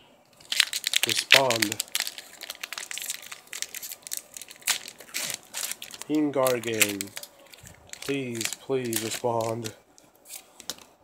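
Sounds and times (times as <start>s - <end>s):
foil wrapper crinkling: 0.4s - 10.5s.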